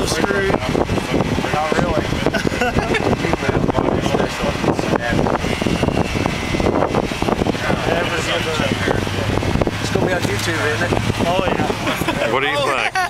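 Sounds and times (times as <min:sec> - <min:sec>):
people talking: 0:00.0 - 0:05.6, 0:07.5 - 0:13.0
wind on microphone: 0:00.0 - 0:12.3.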